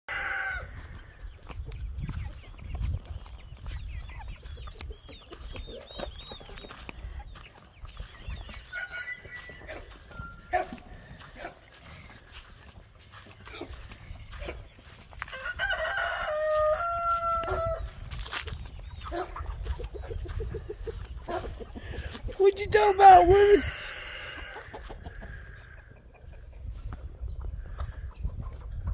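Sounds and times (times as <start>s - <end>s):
rooster crowing: 0.1s - 0.8s, 15.3s - 17.9s
chickens clucking: 0.1s - 28.9s.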